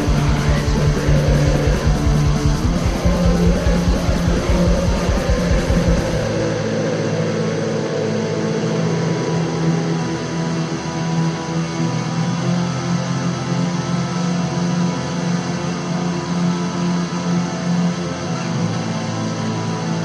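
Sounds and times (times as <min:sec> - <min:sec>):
fast drumming: 0:00.0 - 0:06.5
distorted electric guitars: 0:00.0 - 0:20.0.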